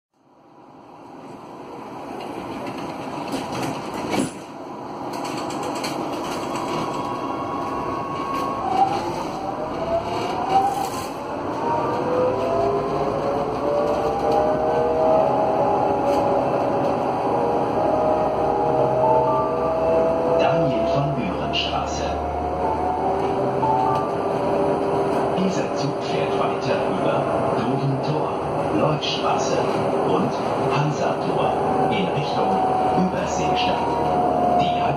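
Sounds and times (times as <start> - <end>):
tram running noise: 0.2 - 34.9
tram inverter whining: 0.3 - 34.9.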